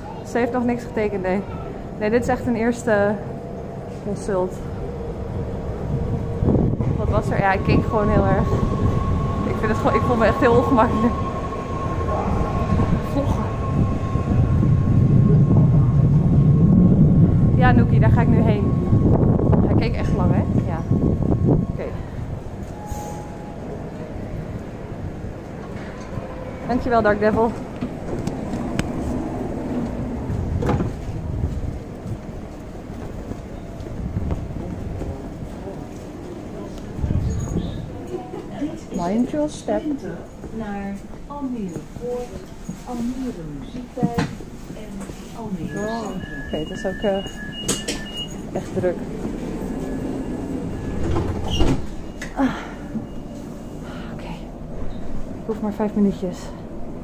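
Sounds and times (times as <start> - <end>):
electric train rumbling: 0.0 - 57.0.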